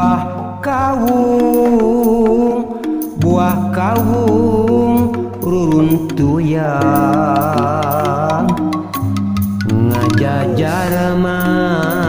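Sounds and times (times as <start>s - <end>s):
man singing with sliding pitch: 0.0s - 12.0s
struck bamboo tubes clicking: 1.0s - 10.6s.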